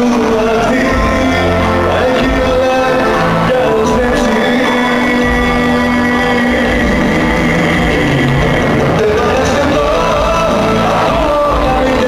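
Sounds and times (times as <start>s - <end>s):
loud live band music: 0.0s - 12.0s.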